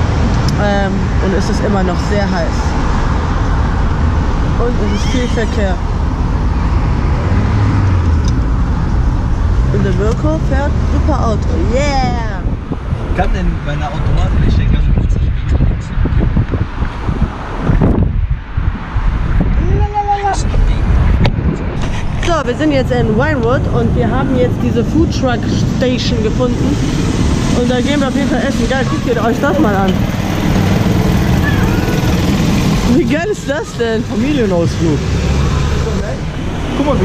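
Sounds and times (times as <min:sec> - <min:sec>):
road and engine rumble in car: 0:00.0 - 0:37.0
wind buffeting microphone: 0:00.0 - 0:37.0
karts engine rumble: 0:19.0 - 0:37.0.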